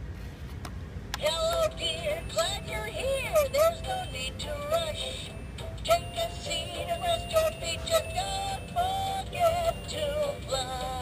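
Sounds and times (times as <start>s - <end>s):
toy singing in electronic voice: 1.2s - 11.0s.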